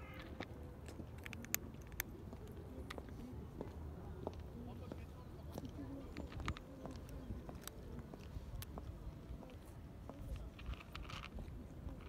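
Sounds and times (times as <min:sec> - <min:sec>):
kittens crunching kibble: 0:00.3 - 0:03.2, 0:10.4 - 0:12.0.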